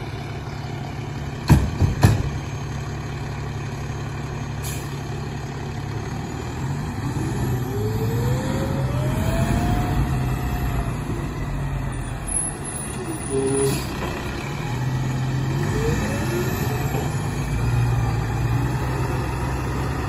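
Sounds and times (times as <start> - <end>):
diesel truck engine revving: 0.0 - 20.0.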